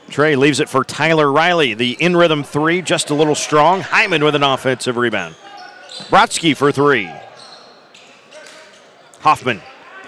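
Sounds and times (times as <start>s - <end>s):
basketball court sounds: 5.1s - 9.4s.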